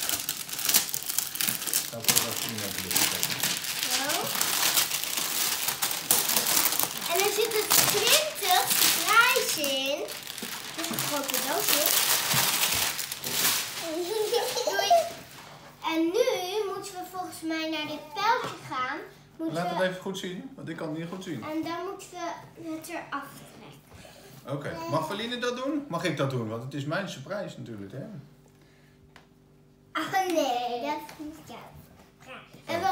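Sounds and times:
plastic shrink-wrap crinkling: 0:00.0 - 0:15.5
child's voice: 0:03.8 - 0:04.4, 0:07.0 - 0:12.1, 0:13.8 - 0:15.2, 0:15.8 - 0:19.9, 0:21.4 - 0:23.8, 0:30.0 - 0:32.9.

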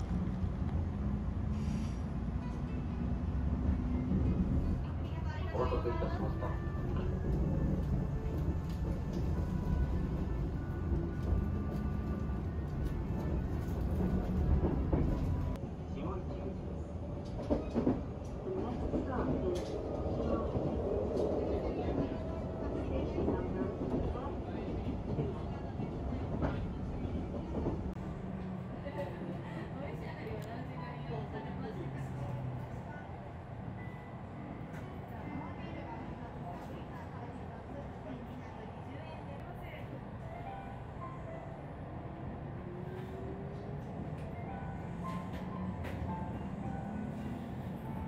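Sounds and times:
electric train rumbling: 0:00.0 - 0:48.0.

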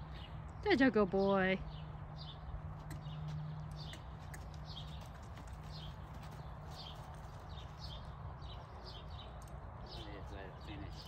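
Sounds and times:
bird chirping: 0:00.0 - 0:11.0
horse hoofbeats on dirt: 0:02.6 - 0:08.6.

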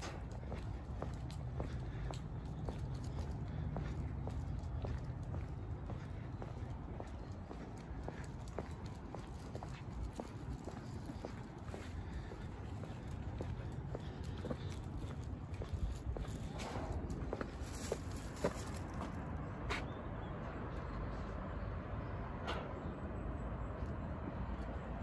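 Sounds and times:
footsteps on asphalt: 0:00.0 - 0:20.0.

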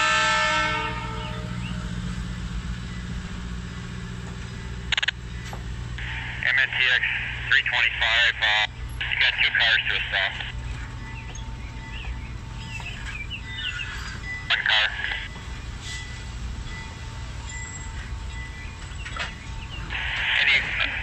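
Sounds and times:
train cars rumbling past: 0:00.0 - 0:21.0
birds chirping: 0:02.6 - 0:21.0.

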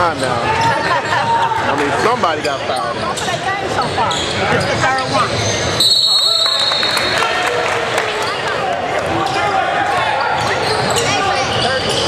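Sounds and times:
voices in background: 0:00.0 - 0:12.0.

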